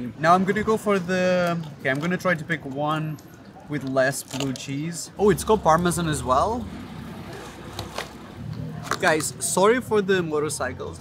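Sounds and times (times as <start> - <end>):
street noise: 0.0 - 11.0
motorcycle engines growling: 5.0 - 11.0.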